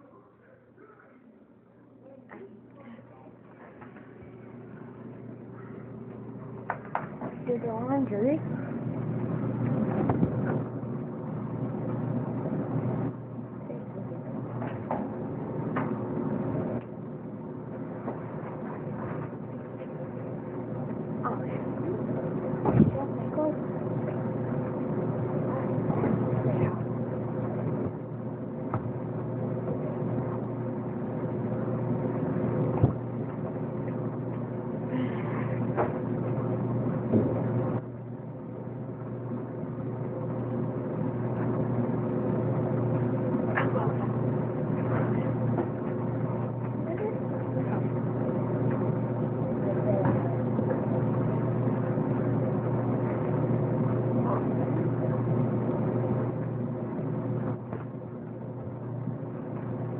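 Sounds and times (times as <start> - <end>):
low mechanical hum: 0.0 - 59.9.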